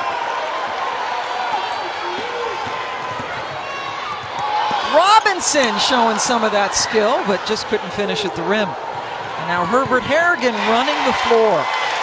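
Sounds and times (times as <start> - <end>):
crowd hubbub: 0.0 - 11.6.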